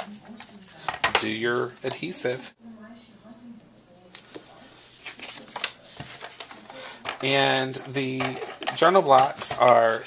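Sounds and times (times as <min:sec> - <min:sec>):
card stock rustling: 0:04.2 - 0:10.0.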